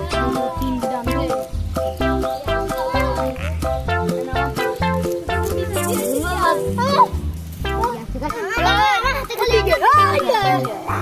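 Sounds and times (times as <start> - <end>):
music with stepping bass line: 0.0 - 11.0
children calling out: 2.4 - 3.8.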